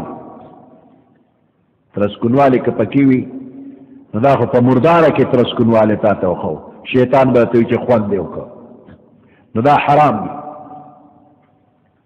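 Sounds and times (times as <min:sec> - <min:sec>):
man's voice echoing: 0:00.0 - 0:01.2, 0:01.8 - 0:11.7.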